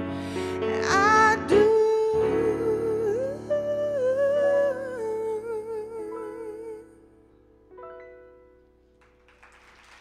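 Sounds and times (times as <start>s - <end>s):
woman singing with vibrato: 0.6s - 7.0s.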